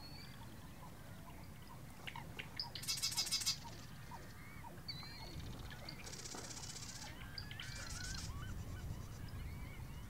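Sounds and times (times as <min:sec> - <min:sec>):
marsh wren singing: 0:00.0 - 0:10.0.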